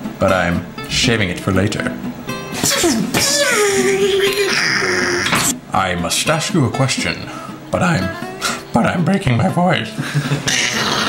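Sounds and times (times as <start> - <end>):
background music: 0.0 - 11.0
person laughing: 10.0 - 11.0.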